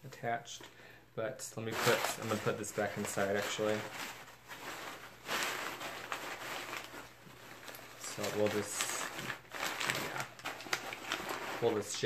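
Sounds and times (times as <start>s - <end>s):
paper stuffing rustling: 1.6s - 12.0s.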